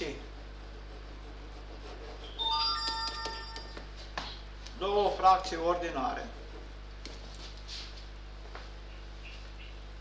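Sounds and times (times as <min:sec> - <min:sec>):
electronic chime: 0:02.4 - 0:03.8.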